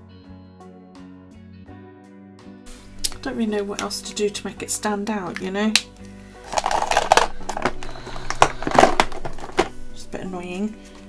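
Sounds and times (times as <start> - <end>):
paper rustling and crinkling: 6.4 - 9.8.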